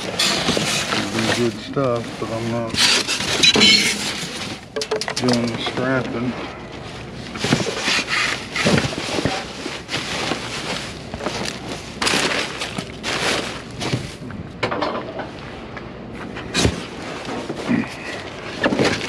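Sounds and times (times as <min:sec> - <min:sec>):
plastic and cardboard rustling: 0:00.0 - 0:14.2, 0:16.2 - 0:19.0.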